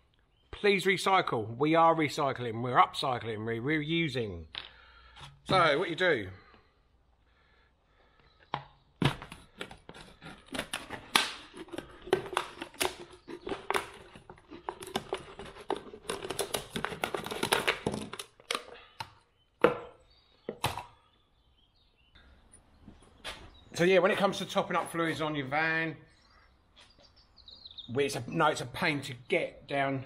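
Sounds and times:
knife cutting plastic bottle: 8.5 - 21.0.

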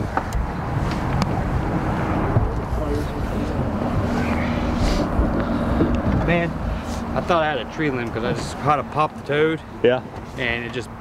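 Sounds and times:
wind buffeting microphone: 0.0 - 6.7.

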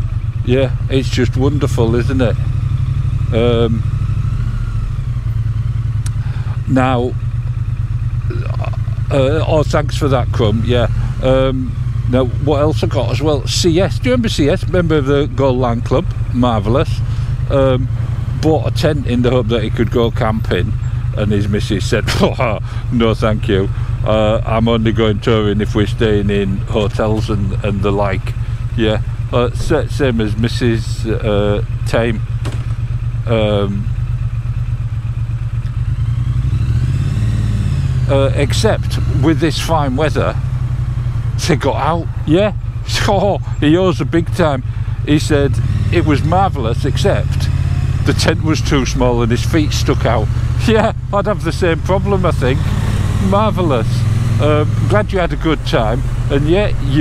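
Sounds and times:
motorcycle engine at low revs: 0.0 - 57.0.

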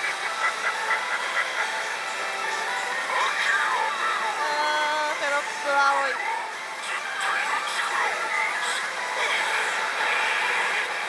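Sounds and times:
pachinko electronic music: 0.0 - 11.0.

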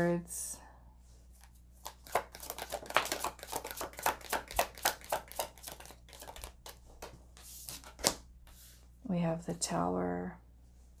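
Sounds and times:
cards being shuffled: 1.4 - 8.6.

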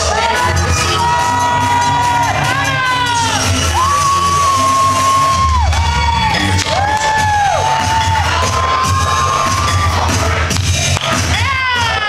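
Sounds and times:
hip hop music with bass beat: 0.0 - 12.0
audience cheering and whooping: 0.3 - 12.0.

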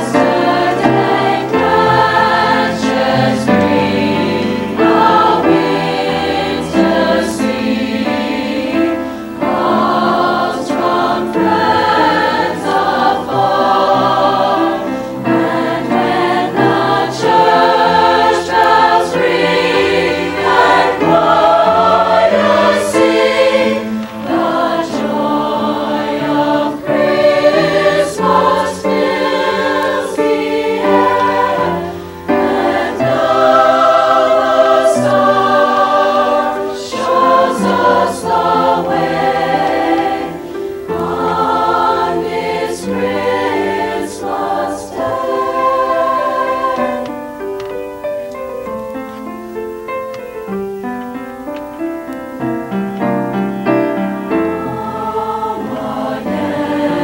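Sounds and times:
choir singing in harmony: 0.0 - 51.2, 51.8 - 57.0.

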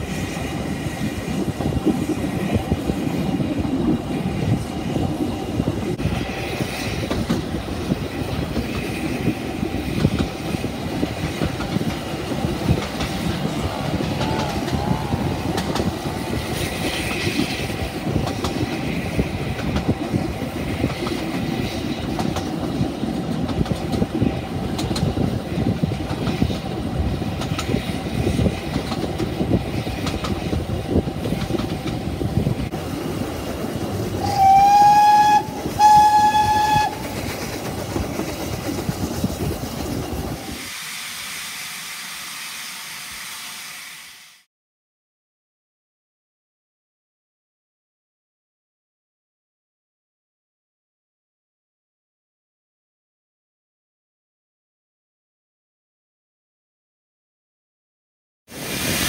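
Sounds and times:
railway carriages rumbling and rattling: 0.0 - 43.9, 58.5 - 59.0
steam locomotive whistle: 34.2 - 37.2, 40.6 - 44.4.

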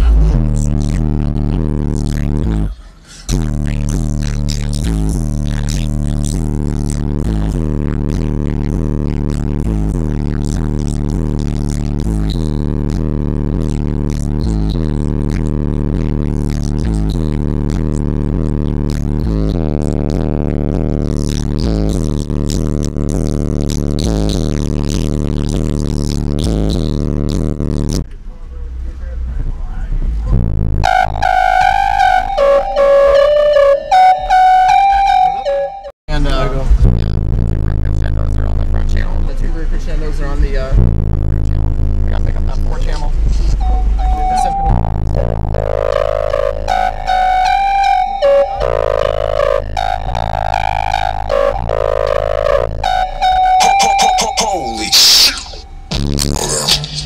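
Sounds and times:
droning bass with repeating beat: 0.0 - 57.0
melodic music: 30.9 - 35.9, 43.6 - 56.0.

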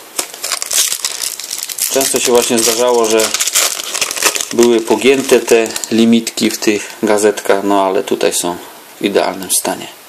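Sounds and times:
foil packet crinkling: 0.0 - 7.0.

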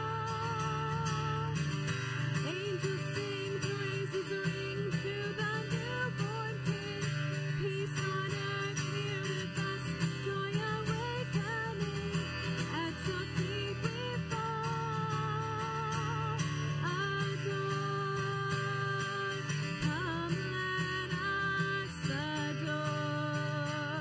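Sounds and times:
acoustic guitar strumming: 0.0 - 24.0
woman singing: 0.0 - 24.0.

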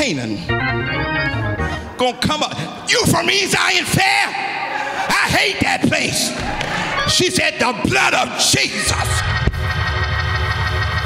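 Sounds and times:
organ holding a chord: 0.3 - 2.2.

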